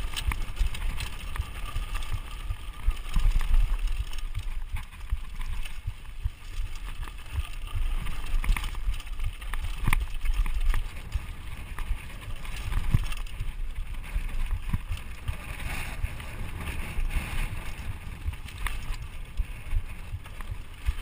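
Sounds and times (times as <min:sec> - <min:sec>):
bike clicks and rattles: 0:00.0 - 0:21.0
bike tyres rumbling on dirt: 0:00.0 - 0:21.0
wind buffeting microphone: 0:00.0 - 0:21.0.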